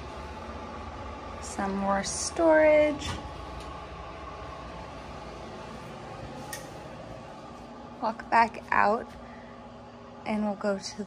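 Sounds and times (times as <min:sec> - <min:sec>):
low room hum and hiss: 0:00.0 - 0:11.0.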